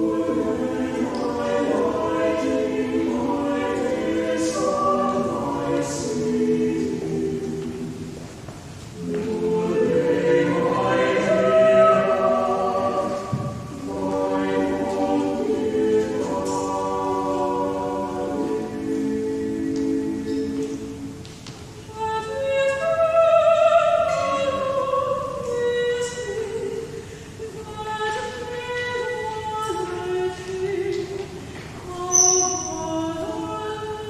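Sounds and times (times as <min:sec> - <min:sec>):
church choir singing: 0:00.0 - 0:34.0.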